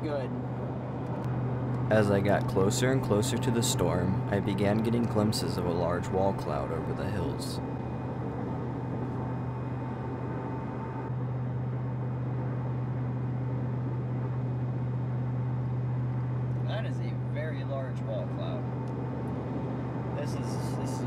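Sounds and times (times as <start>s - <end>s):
truck engine and road drone: 0.0s - 21.0s.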